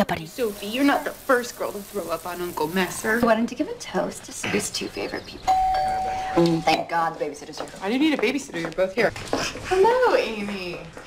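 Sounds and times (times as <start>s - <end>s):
doorbell chime: 5.5s - 6.7s.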